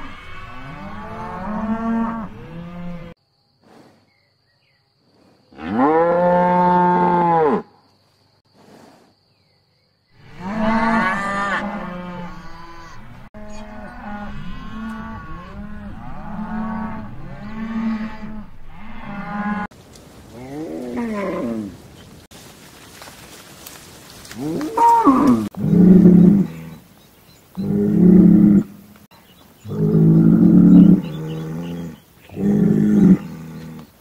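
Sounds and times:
cattle mooing: 0.0 - 3.1, 10.2 - 19.7, 29.7 - 33.9.

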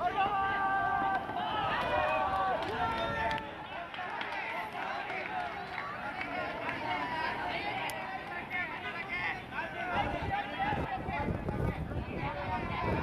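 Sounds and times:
young men shouting calls: 0.0 - 11.2.

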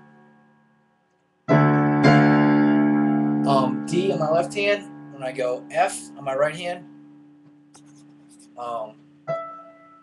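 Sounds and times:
digital piano chord ringing: 0.0 - 7.7, 8.6 - 10.0.

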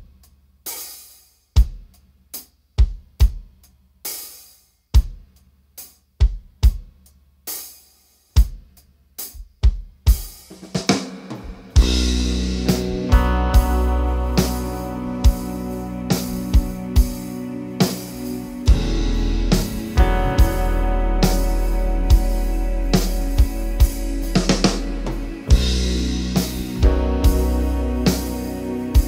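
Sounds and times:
drum kit playing a groove: 0.0 - 29.0
band with bass and chords: 11.7 - 29.0.

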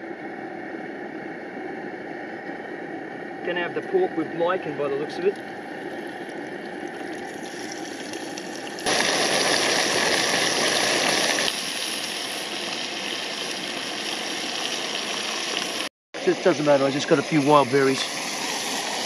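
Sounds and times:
meat sizzling in oil: 7.3 - 15.9, 16.8 - 19.0
stove burner hissing: 7.7 - 19.0.

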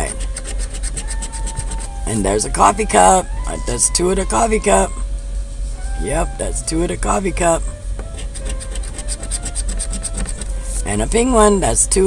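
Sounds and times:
scratcher scraping lottery ticket: 0.0 - 3.3, 7.1 - 11.0.

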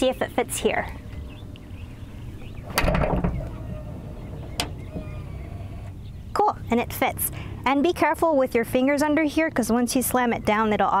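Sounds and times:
faint motor whine: 0.1 - 6.4
latch click: 2.6 - 3.6, 4.2 - 5.3
trunk lid thump: 2.6 - 5.4.

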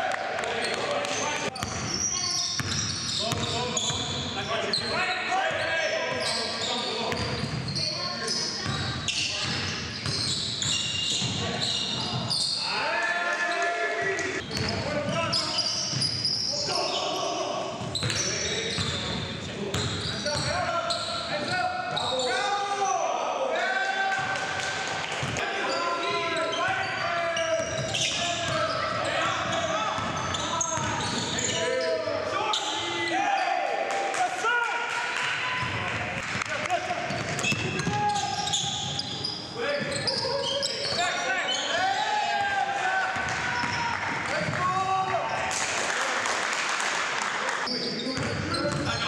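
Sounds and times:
sneakers squeaking on court: 0.6 - 12.7, 14.2 - 22.4, 25.2 - 32.9, 37.0 - 42.4, 43.2 - 44.6, 47.6 - 49.0
basketball bouncing: 2.6 - 3.5, 37.1 - 38.1, 48.2 - 49.0
players calling out: 19.8 - 45.6.

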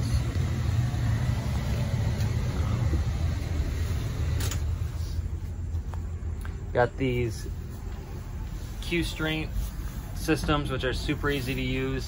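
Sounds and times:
van engine idling: 0.0 - 12.0.

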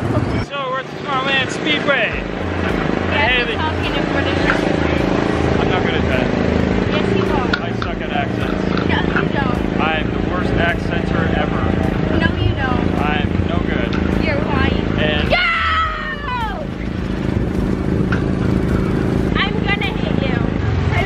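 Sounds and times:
voices: 0.0 - 17.2, 19.3 - 21.0.

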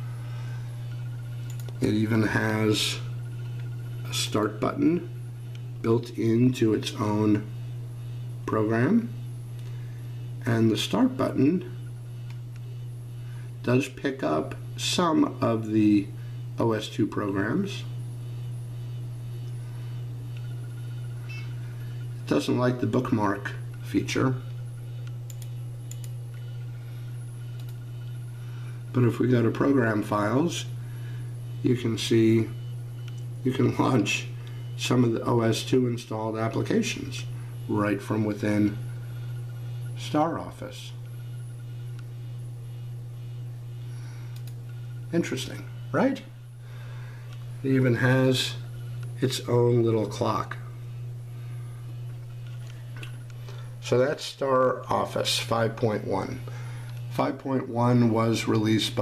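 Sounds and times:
computer humming: 0.0 - 59.0
faint clicks: 44.3 - 44.8.

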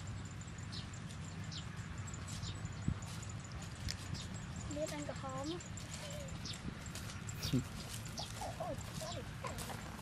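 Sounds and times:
woman speaking: 4.7 - 6.5.

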